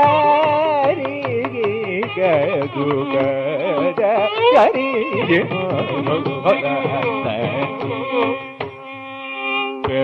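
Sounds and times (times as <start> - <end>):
man singing with ornamented pitch: 0.0 - 8.6
hand drum strokes: 0.0 - 8.8
violin: 0.0 - 10.0.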